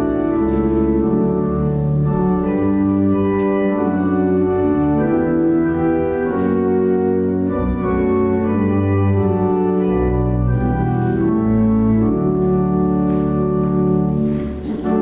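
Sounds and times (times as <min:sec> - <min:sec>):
church organ playing a hymn: 0:00.0 - 0:15.0.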